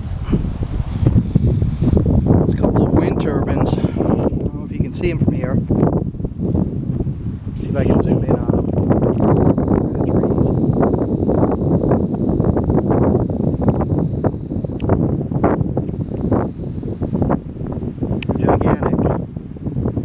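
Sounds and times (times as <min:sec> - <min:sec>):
wind buffeting microphone: 0:00.0 - 0:20.0
zoom motor high whine: 0:06.3 - 0:18.8.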